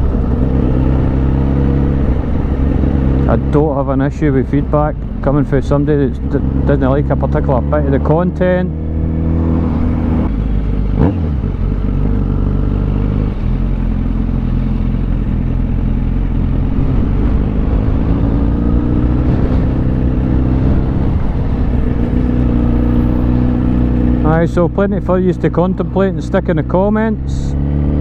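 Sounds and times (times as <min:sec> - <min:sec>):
motorcycle engine running: 0:00.0 - 0:28.0.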